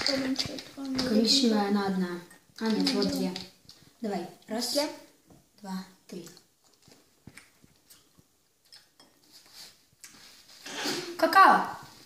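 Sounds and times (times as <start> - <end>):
jelly beans clicking and rustling: 0.0 - 4.0, 6.1 - 10.2.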